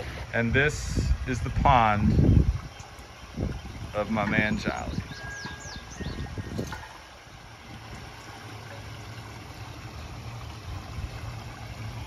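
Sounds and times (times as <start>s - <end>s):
pond water trickling: 0.0s - 12.0s
steady low hum: 0.0s - 12.0s.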